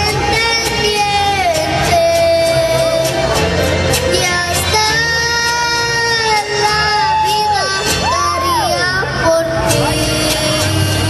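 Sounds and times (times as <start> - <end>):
boy singing into a microphone: 0.0 - 3.4, 4.1 - 11.0
instrumental accompaniment: 0.0 - 11.0.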